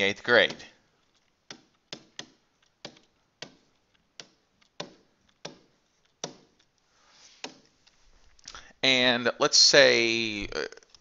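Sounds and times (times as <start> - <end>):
stylus tapping tablet screen: 0.0 - 8.6.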